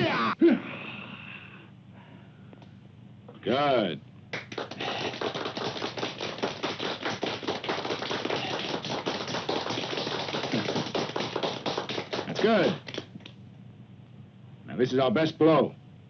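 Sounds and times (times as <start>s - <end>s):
group clapping: 4.3s - 13.4s.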